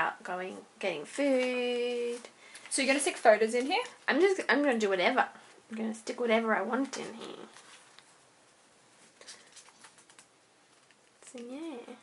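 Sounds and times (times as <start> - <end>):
paper page turning: 9.0 - 11.4.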